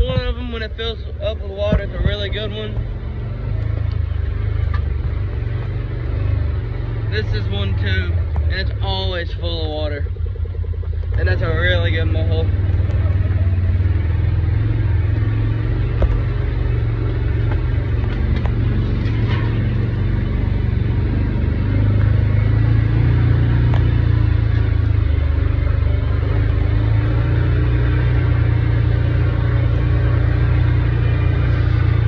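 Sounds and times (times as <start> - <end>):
vehicle engine droning: 0.0 - 32.0
knocks and rattles: 15.8 - 20.2.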